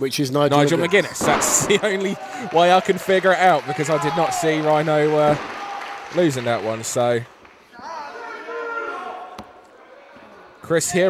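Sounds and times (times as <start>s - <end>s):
voice in a hall: 0.0s - 11.0s
commentary: 0.2s - 9.6s.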